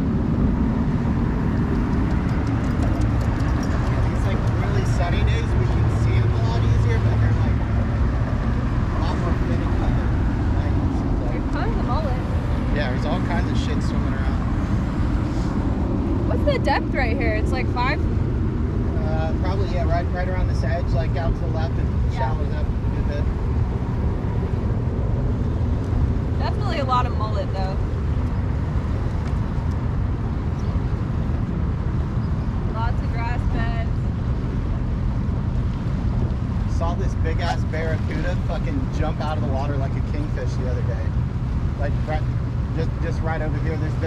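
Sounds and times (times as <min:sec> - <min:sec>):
boat motor running: 0:00.0 - 0:44.0
wind: 0:00.0 - 0:44.0.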